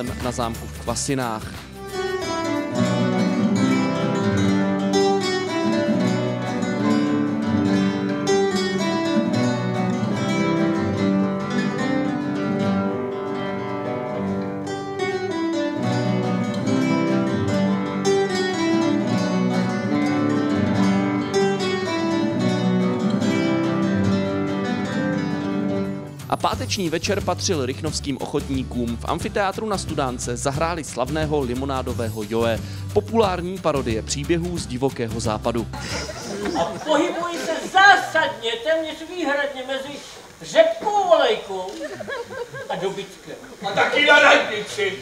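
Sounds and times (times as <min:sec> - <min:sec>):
classical guitars playing: 0:01.6 - 0:26.3.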